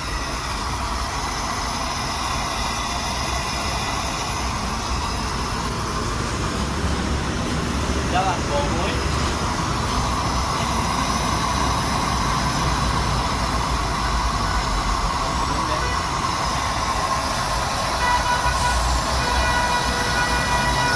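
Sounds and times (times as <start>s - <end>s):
faint high steady tones: 0.0s - 6.4s, 8.1s - 20.9s
machine roaring with low rumble: 0.0s - 20.9s.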